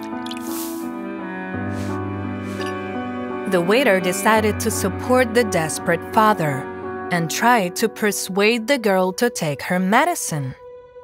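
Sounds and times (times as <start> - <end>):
liquid dripping and splashing: 0.0 - 0.9
background music: 0.0 - 11.0.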